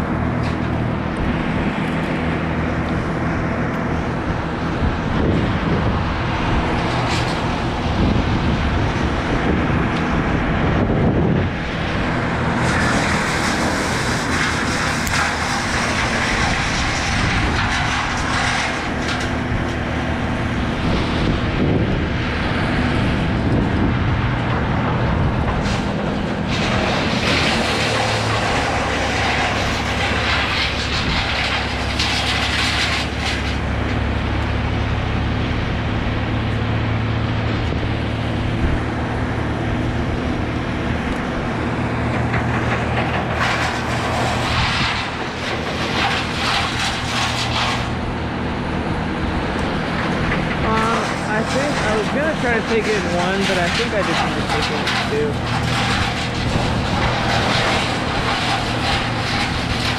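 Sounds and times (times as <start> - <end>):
distant engine humming: 0.0 - 59.9
rushing noise: 0.0 - 59.9.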